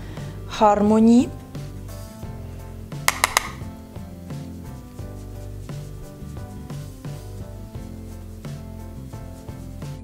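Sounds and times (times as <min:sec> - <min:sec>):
background music: 0:00.0 - 0:10.0
sharp plastic clicks: 0:03.1 - 0:03.6.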